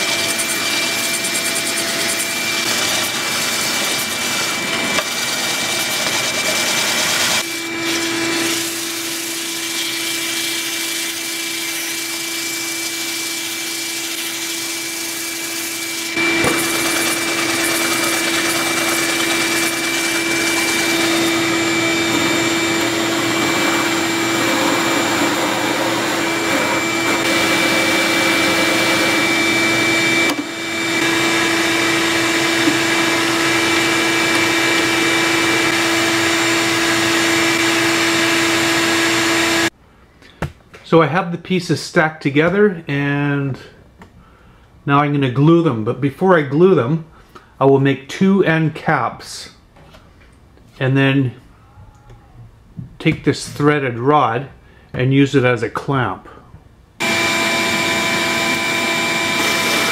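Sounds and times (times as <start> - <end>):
sandpaper on spinning wood: 0.0 - 29.4
drill press running: 0.0 - 39.7, 57.0 - 59.9
shop vacuum running: 0.0 - 39.8, 57.0 - 59.9.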